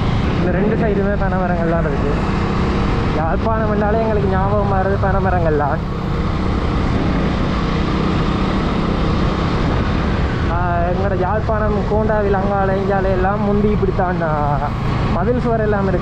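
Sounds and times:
motorcycle engine at road speed: 0:00.0 - 0:16.0
wind rush on microphone: 0:00.0 - 0:16.0.

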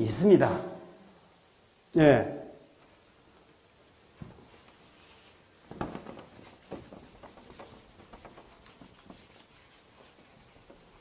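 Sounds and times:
eraser rubbing on whiteboard: 0:04.6 - 0:11.0.

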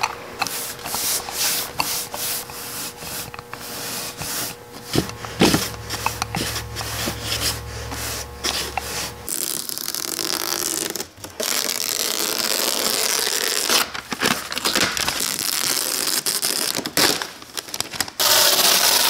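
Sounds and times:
steady low hum: 0:00.0 - 0:09.5.

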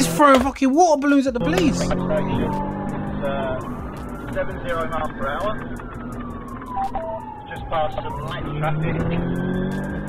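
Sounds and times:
police siren wailing: 0:01.4 - 0:10.0.

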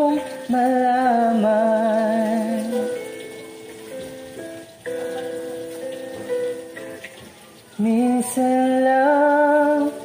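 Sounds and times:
instrumental backing track: 0:00.0 - 0:08.8.

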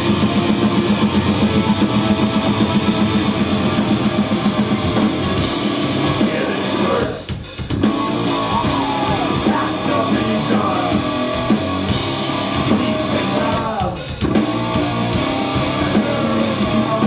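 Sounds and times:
heavy rock band playing: 0:00.0 - 0:17.0.

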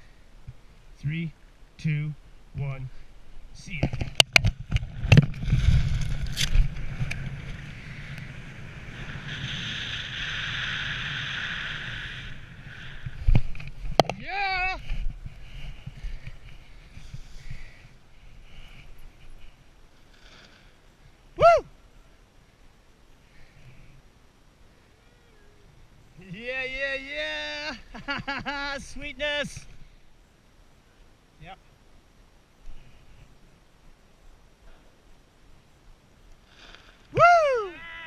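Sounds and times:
wind rushing over microphone: 0:03.7 - 0:18.8
person whooping: 0:21.4 - 0:21.8, 0:37.1 - 0:38.0.

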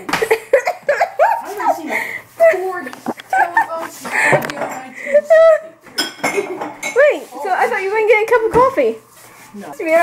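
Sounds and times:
dishes clinking: 0:04.1 - 0:05.0, 0:05.9 - 0:07.1.

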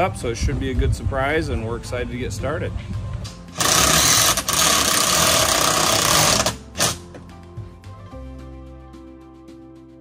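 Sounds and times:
power drill running: 0:03.5 - 0:07.0.

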